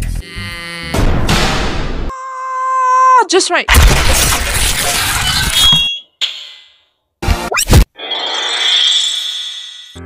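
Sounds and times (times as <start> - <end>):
ice shattering crash: 3.7 - 5.6.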